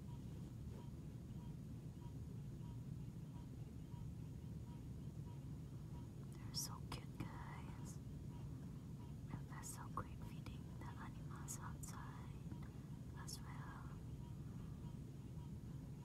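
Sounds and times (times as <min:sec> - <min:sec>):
person whispering: 0:06.4 - 0:08.0, 0:09.3 - 0:12.4, 0:13.2 - 0:14.0.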